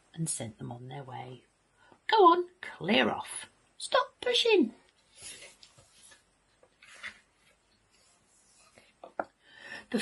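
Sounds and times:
paper page rustle: 0:05.0 - 0:09.0.

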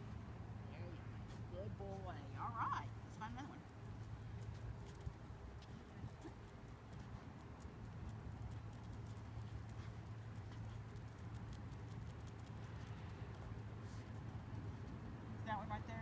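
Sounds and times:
steady low hum: 0:00.0 - 0:16.0
dog claws clicking on concrete: 0:03.7 - 0:15.1.

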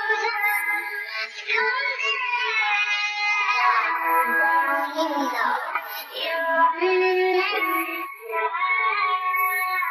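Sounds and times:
woman singing pop song: 0:00.0 - 0:09.9.

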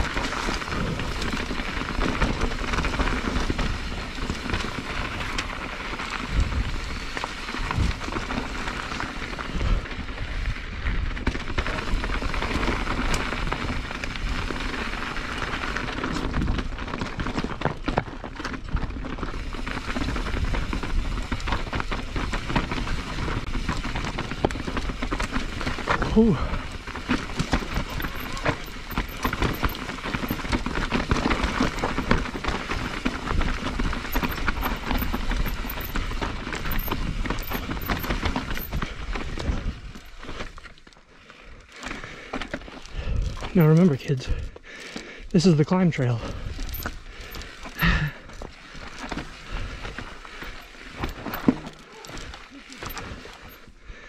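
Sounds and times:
bike rattling over rocks: 0:00.0 - 0:53.8
bike tyres rumbling on dirt: 0:00.0 - 0:54.0
rider exclaiming: 0:27.6 - 0:29.6.

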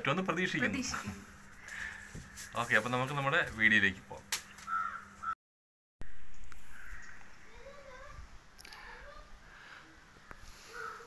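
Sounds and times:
bird calling: 0:04.6 - 0:05.4, 0:06.0 - 0:08.1, 0:10.2 - 0:11.0.

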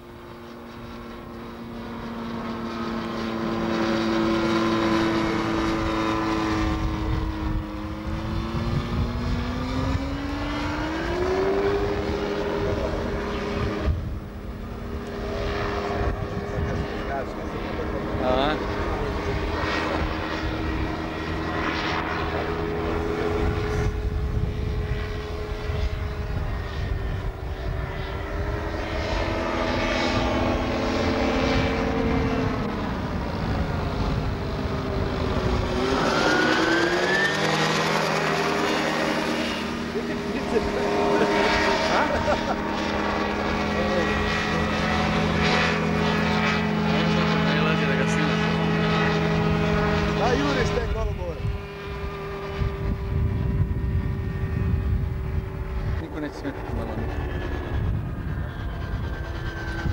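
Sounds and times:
hang glider engine droning overhead: 0:00.0 - 0:59.9.

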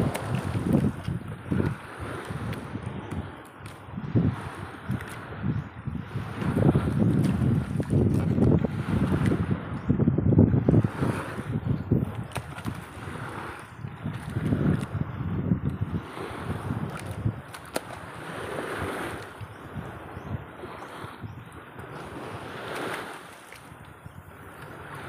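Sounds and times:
water sloshing against boat hull: 0:00.0 - 0:05.4, 0:06.0 - 0:09.5, 0:10.7 - 0:25.0
wind buffeting microphone: 0:00.0 - 0:25.0.

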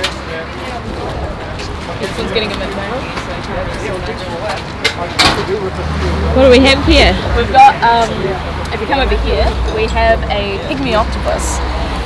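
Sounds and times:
people talking: 0:00.0 - 0:11.7.

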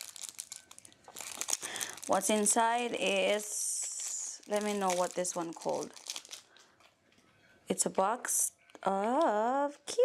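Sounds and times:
packaging crinkling: 0:00.0 - 0:06.9.

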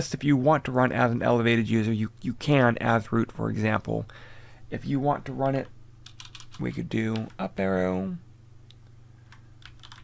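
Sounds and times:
keyboard keystrokes: 0:06.0 - 0:07.4, 0:09.3 - 0:10.0.

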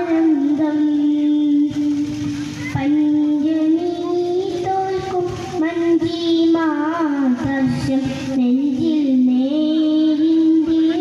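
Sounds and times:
boy singing through pa: 0:00.0 - 0:11.0.

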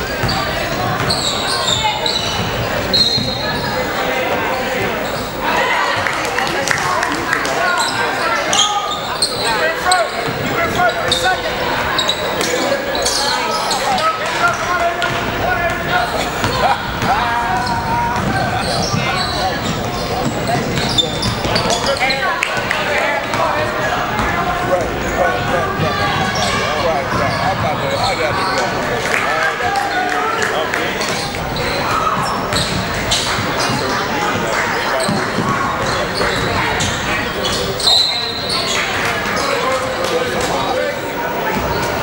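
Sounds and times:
indistinct voices in a hall: 0:00.0 - 0:42.0
basketballs bouncing on court: 0:00.1 - 0:03.6, 0:14.5 - 0:28.8, 0:31.0 - 0:34.0.

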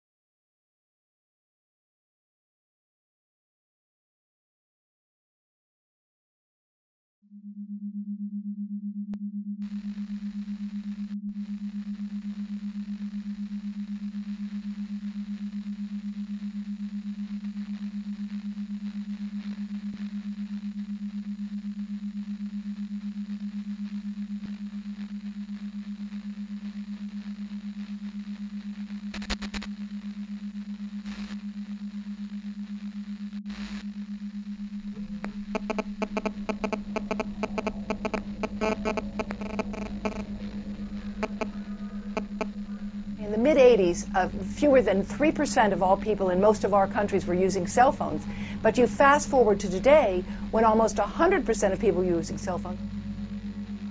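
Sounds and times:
low electronic hum: 0:08.9 - 0:53.9
radio-like static crackles: 0:12.2 - 0:53.9
isolated clicks: 0:35.0 - 0:43.0
bursts of tones: 0:35.0 - 0:43.2.

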